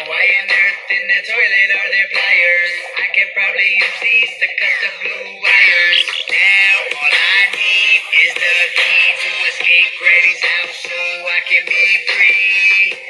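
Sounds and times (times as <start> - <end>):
backing track: 0.2 - 13.0
high pitch-shifted singing: 5.5 - 6.8.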